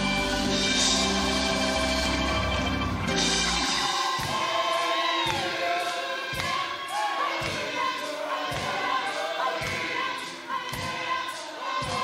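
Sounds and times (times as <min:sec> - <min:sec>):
low bass: 0:00.0 - 0:03.7
band playing: 0:00.0 - 0:07.1
gospel choir singing: 0:00.0 - 0:12.0.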